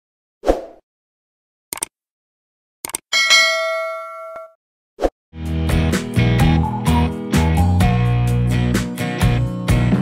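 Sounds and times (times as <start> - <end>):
notification bell ding: 3.2 - 4.6.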